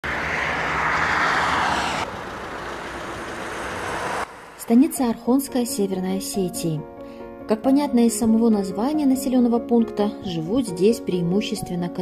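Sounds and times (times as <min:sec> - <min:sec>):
roadside hum: 0:00.0 - 0:05.2
vehicle passing on road: 0:00.0 - 0:05.2.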